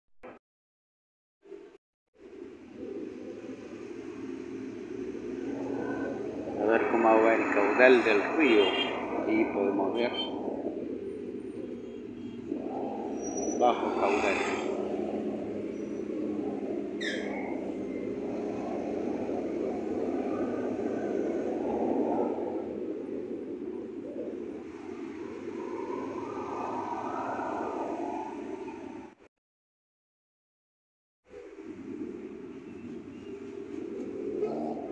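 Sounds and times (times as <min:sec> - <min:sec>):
low outdoor rushing noise: 0:02.2 - 0:29.2, 0:31.3 - 0:34.9
city traffic noise: 0:02.3 - 0:29.2, 0:31.3 - 0:34.9
high falling squeal: 0:05.7 - 0:10.4.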